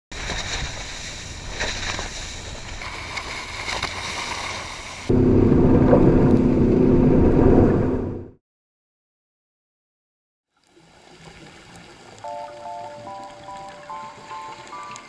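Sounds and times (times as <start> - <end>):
water rushing along boat hull: 0.1 - 7.9, 10.7 - 15.0.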